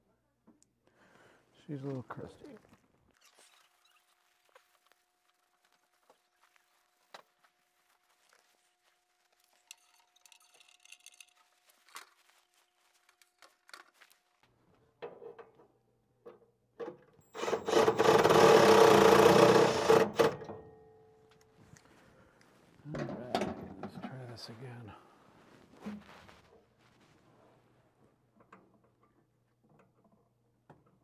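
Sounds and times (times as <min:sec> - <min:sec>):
cordless drill driving a screw: 0:17.2 - 0:20.4.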